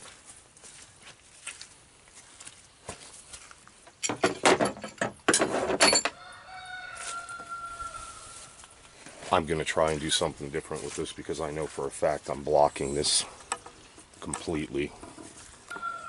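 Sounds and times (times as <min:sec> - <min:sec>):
rooster crowing: 0:06.1 - 0:08.6, 0:15.7 - 0:16.0.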